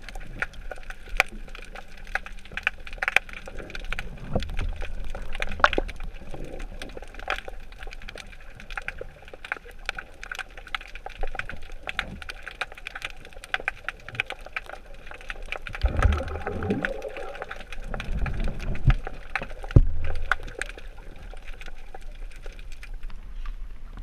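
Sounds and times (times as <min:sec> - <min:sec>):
underwater crackle of clicks: 0:00.0 - 0:24.0
low underwater rumbling: 0:10.9 - 0:24.0.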